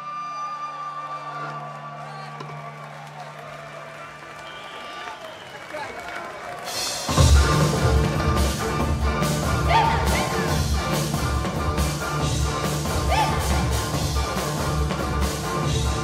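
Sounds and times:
crowd noise: 0:00.0 - 0:16.0
drums: 0:05.7 - 0:16.0
traditional instrument band: 0:06.7 - 0:16.0.

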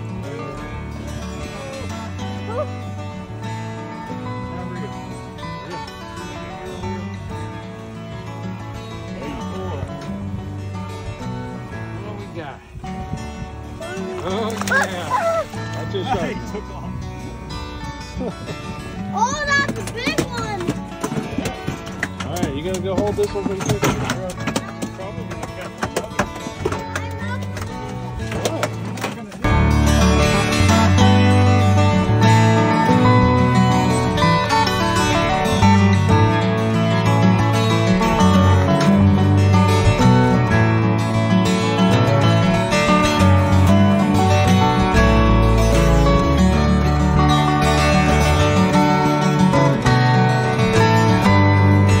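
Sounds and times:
guitar music with steady beat: 0:00.0 - 0:52.0
live sound from boat: 0:00.0 - 0:52.0.

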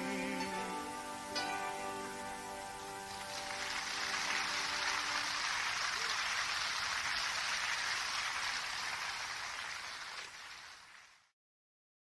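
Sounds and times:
audience applauding: 0:03.1 - 0:11.3.

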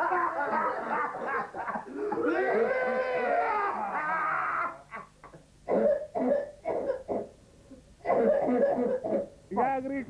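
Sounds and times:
voiced wail: 0:02.1 - 0:04.9
person coughing: 0:05.0 - 0:07.3, 0:08.0 - 0:09.3.

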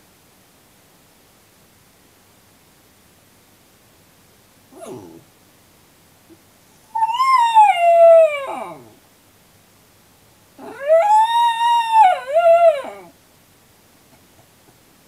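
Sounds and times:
dog howling: 0:04.8 - 0:05.2, 0:06.9 - 0:09.0, 0:10.6 - 0:13.1
dog short cry: 0:04.8 - 0:05.2.

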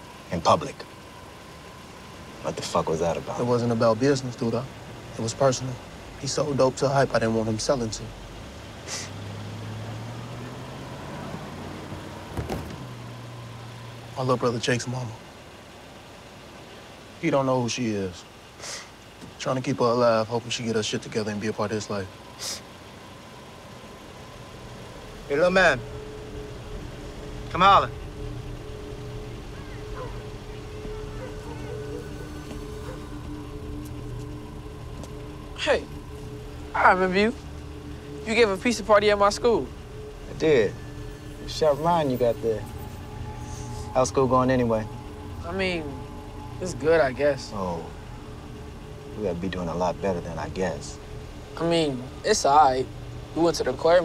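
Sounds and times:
car engine idling: 0:00.0 - 0:54.0
sustained music drone: 0:00.0 - 0:54.0.

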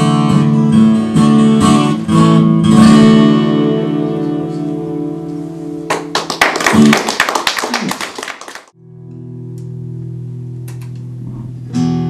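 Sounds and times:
audience applauding: 0:05.9 - 0:08.8.

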